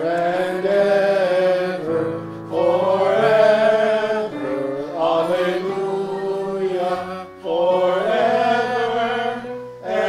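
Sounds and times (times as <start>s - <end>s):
congregation singing: 0.0s - 10.0s
sustained instrumental accompaniment: 0.0s - 10.0s.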